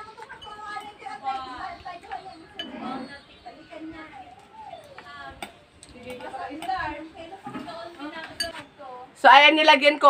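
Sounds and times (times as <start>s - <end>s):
faint background voices: 0.0s - 9.3s
metal spoon clinking ceramic bowl: 2.5s - 3.0s, 8.3s - 8.6s.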